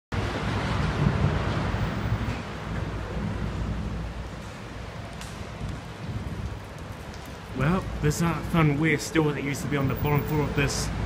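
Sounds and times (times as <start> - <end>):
rough noisy rumble: 0.1 - 11.0.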